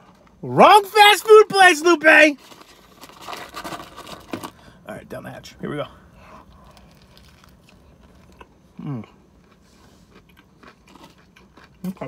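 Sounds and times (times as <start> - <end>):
small crackles: 2.2 - 4.6, 6.2 - 8.5
biting and chewing food: 2.4 - 4.6, 6.1 - 12.0.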